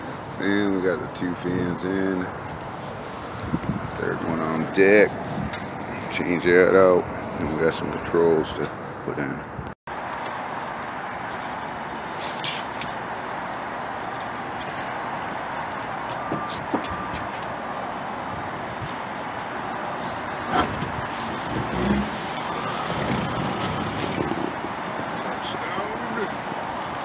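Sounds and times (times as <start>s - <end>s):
city traffic noise: 0.0s - 27.0s.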